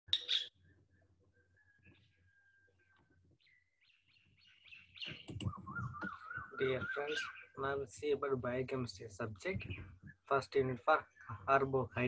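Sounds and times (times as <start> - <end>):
faint bird chirps: 0.1 - 8.0, 9.6 - 12.0.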